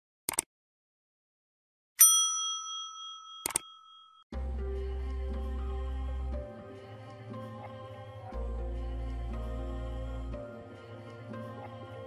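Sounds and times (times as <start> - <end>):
bright bell ding: 2.0 - 4.3
music: 4.3 - 12.0.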